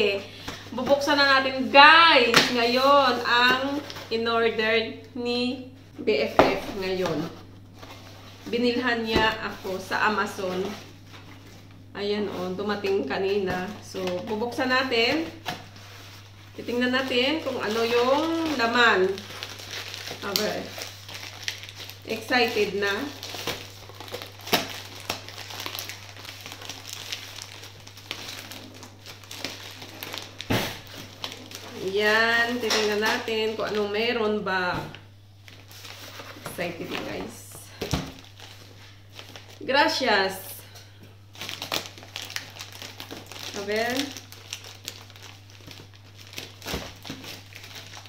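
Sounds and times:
packaging crinkling and tearing: 0:13.0 - 0:34.0, 0:35.4 - 0:39.6, 0:40.8 - 0:48.0.

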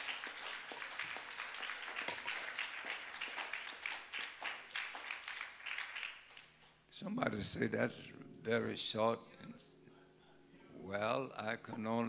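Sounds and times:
congregation applauding: 0:00.0 - 0:06.8.

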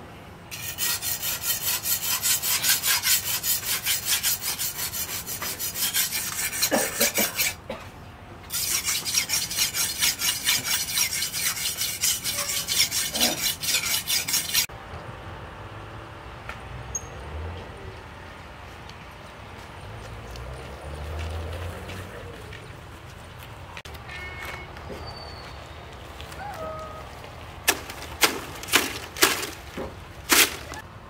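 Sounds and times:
blade scraping on whetstone: 0:00.5 - 0:07.6, 0:08.5 - 0:14.7, 0:27.7 - 0:30.8.

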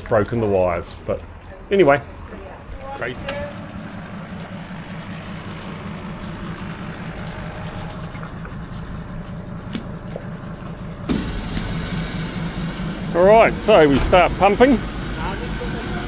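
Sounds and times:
truck engine idling: 0:00.0 - 0:16.0.

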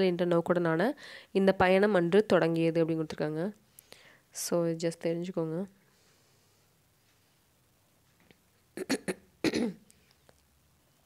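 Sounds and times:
person clearing throat: 0:08.8 - 0:09.8.

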